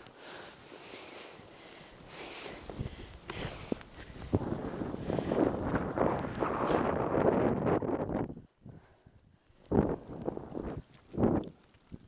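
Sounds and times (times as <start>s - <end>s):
skis hissing and scraping on snow: 0.1s - 7.4s
wind buffeting microphone: 2.0s - 12.0s.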